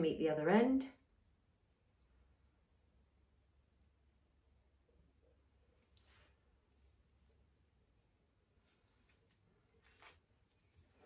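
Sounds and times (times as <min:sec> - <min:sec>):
rustling of string and dried grass: 0:08.6 - 0:11.0.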